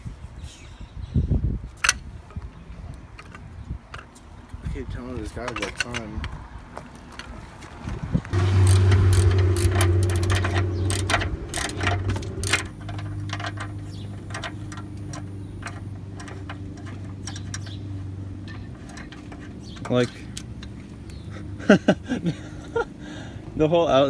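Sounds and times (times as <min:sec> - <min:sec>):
low mechanical hum: 0:08.2 - 0:23.6
hand wrench clicking on bolts: 0:08.6 - 0:17.8.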